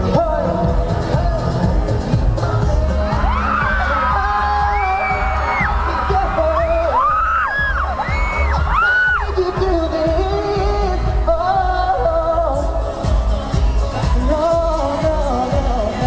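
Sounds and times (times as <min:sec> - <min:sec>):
heavy bass beat: 0:00.0 - 0:16.0
live pop music: 0:00.0 - 0:16.0.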